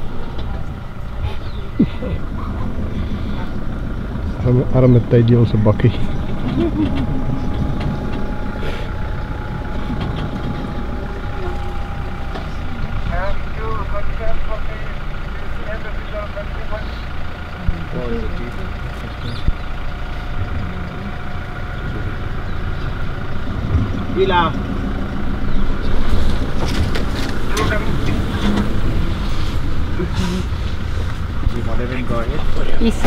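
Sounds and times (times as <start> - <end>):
vehicle engine idling: 0.0 - 33.0.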